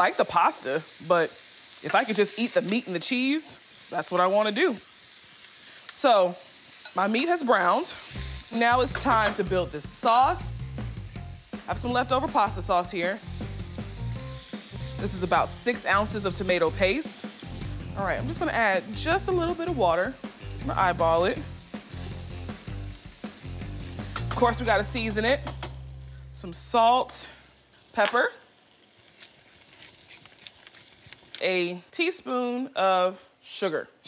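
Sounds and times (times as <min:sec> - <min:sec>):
sauce sizzling in a skillet: 0:00.0 - 0:31.6
pepper mill grinding: 0:11.4 - 0:20.6, 0:21.4 - 0:25.6, 0:27.7 - 0:31.5.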